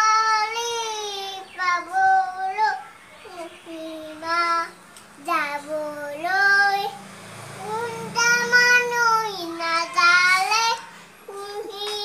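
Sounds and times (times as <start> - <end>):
young child singing: 0.0 - 12.0.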